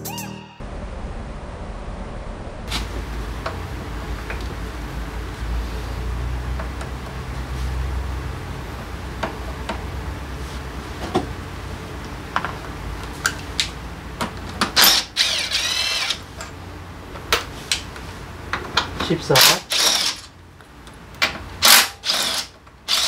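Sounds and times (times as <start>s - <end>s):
low hum: 0.0s - 10.4s
cordless driver motor whirring: 14.8s - 16.2s, 19.5s - 20.3s, 21.6s - 23.0s.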